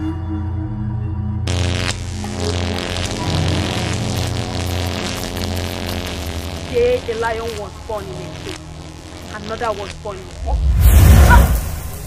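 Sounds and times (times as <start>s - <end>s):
dramatic background music: 0.0s - 3.6s
rushing crackling energy blast: 1.5s - 12.0s.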